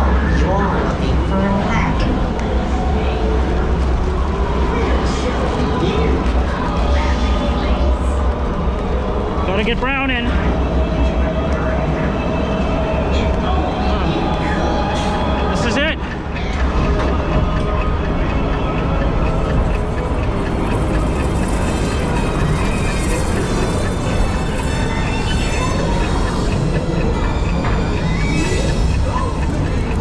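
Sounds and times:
ominous soundtrack music: 0:00.0 - 0:30.0
ride low rumble: 0:00.0 - 0:30.0.

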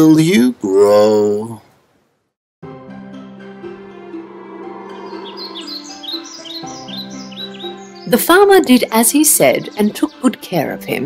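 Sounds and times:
gentle music with held tones: 0:02.6 - 0:11.0
bird chirps: 0:04.0 - 0:10.3.

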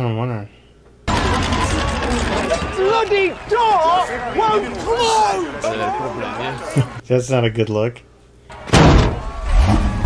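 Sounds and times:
loud slam: 0:08.6 - 0:10.0.

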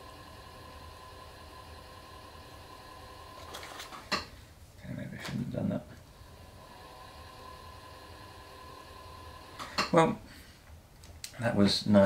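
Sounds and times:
pottery wheel motor hum: 0:00.0 - 0:04.3, 0:06.0 - 0:10.0.

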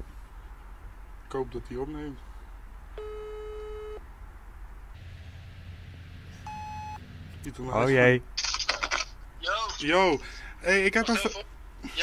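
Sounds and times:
phone ringback tone: 0:03.0 - 0:04.0, 0:06.5 - 0:07.0.

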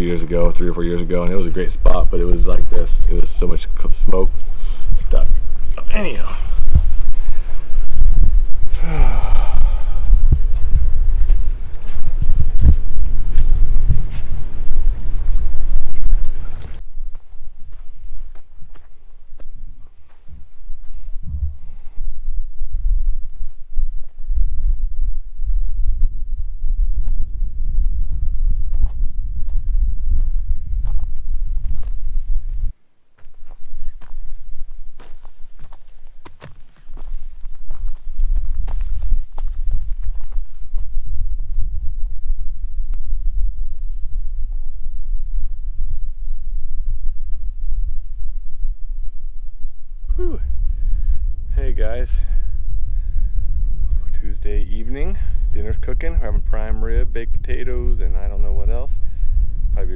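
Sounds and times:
man sighing: 0:08.7 - 0:10.2
loud low rumble: 0:20.4 - 0:32.7.

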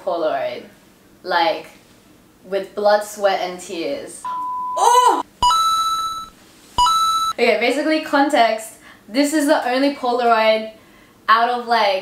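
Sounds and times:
electronic beep: 0:04.3 - 0:04.8, 0:05.4 - 0:07.4.

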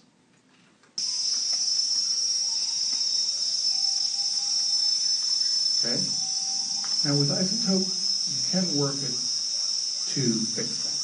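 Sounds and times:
cicada chorus buzzing: 0:01.0 - 0:11.0
faint low drawn-out tones: 0:01.0 - 0:11.0.

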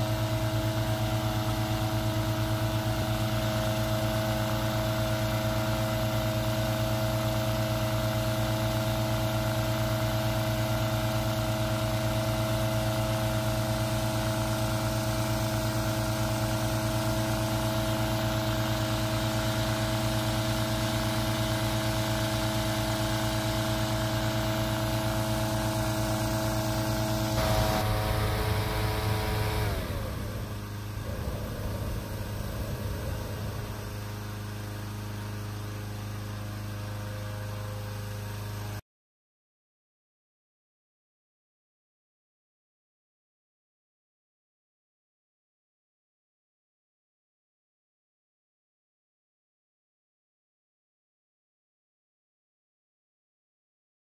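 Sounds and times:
small petrol engine fan running: 0:00.0 - 0:38.4
propane burner firing: 0:23.5 - 0:35.7.

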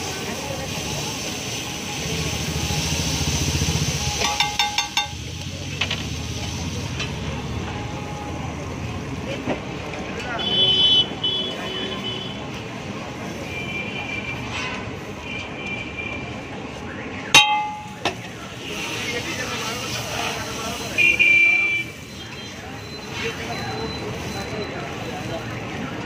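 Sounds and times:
busy street traffic: 0:00.0 - 0:26.0
sharp ringing clink: 0:17.4 - 0:18.0.

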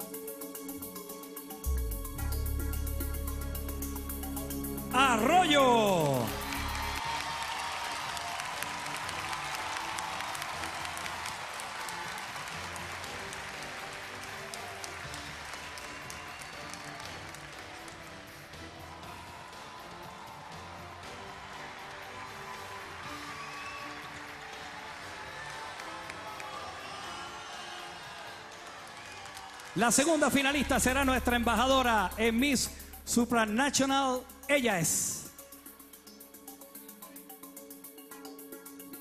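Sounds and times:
music with steady beat: 0:00.0 - 0:07.0, 0:30.4 - 0:39.0
audience applause: 0:05.0 - 0:30.7.

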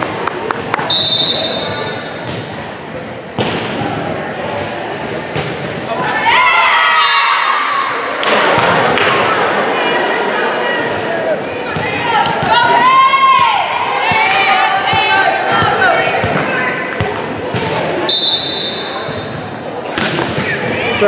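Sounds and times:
players shouting: 0:05.9 - 0:17.2.

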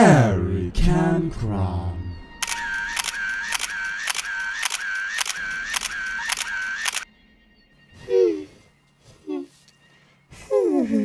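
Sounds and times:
sharp repeating clicks: 0:02.4 - 0:07.0.

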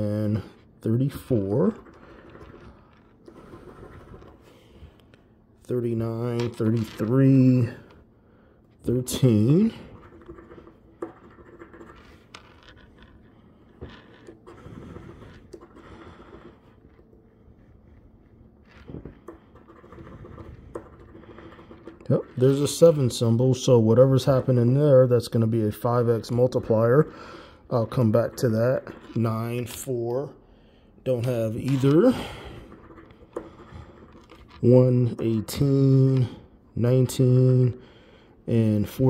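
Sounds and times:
coin scratching lottery ticket: 0:01.3 - 0:04.5, 0:09.3 - 0:17.0, 0:18.6 - 0:23.4, 0:27.7 - 0:29.8, 0:31.5 - 0:35.7.

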